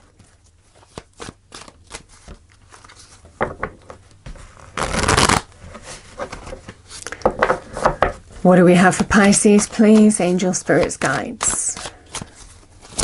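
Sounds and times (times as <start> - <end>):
cards being shuffled: 0.1 - 4.0, 4.6 - 5.5, 9.0 - 13.0.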